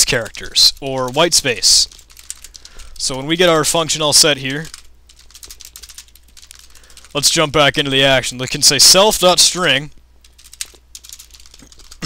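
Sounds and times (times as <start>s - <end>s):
typing on computer keyboard: 0.1s - 3.2s, 4.2s - 7.3s, 10.2s - 12.0s.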